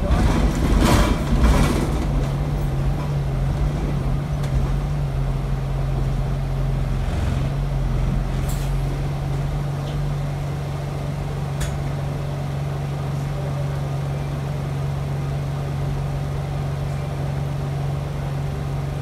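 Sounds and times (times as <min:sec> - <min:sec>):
bus engine humming: 0:00.0 - 0:19.0.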